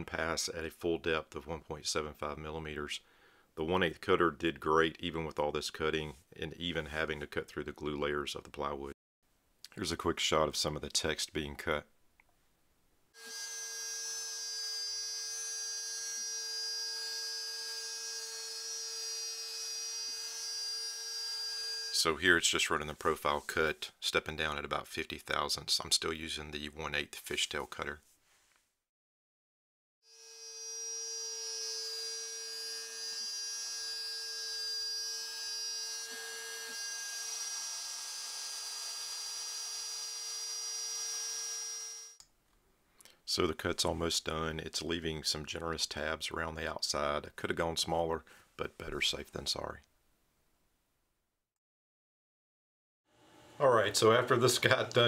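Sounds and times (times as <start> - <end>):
cnc router cutting plywood: 30.4 - 42.0.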